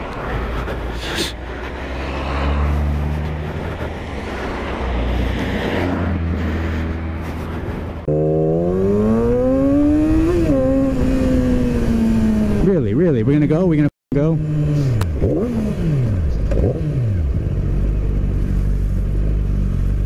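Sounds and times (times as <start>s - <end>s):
wind rush over helmet: 0.0s - 12.6s
motorcycle engine: 0.0s - 12.8s, 14.1s - 20.0s
sport bike engine accelerating: 8.1s - 12.7s, 14.2s - 20.0s.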